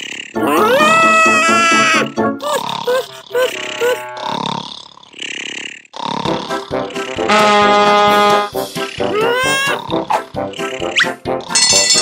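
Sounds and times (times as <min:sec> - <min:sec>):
cartoon snoring: 0:00.0 - 0:00.9, 0:02.3 - 0:11.6.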